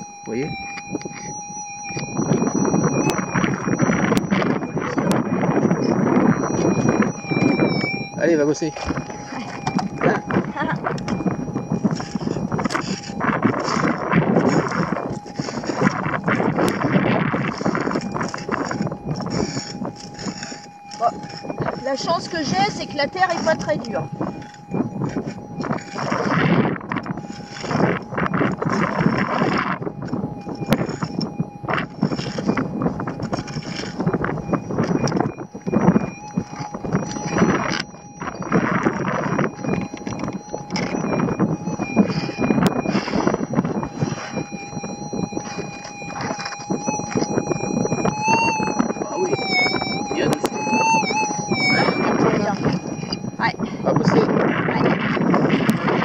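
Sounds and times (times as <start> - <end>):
metal detector tone: 0.0 - 56.0.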